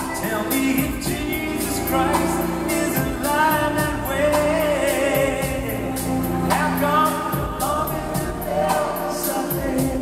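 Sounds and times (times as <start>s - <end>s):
live band accompaniment: 0.0s - 10.0s
man singing soulful ballad: 0.0s - 10.0s.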